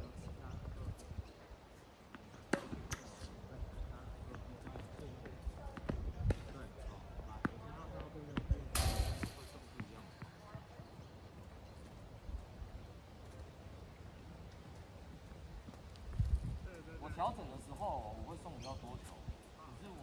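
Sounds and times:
tennis balls struck and bouncing: 2.1 - 3.3, 4.3 - 6.8, 7.4 - 10.7.

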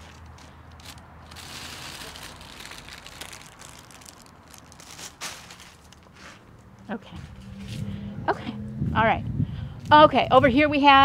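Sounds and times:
dry plant material rustling: 0.0 - 6.6.

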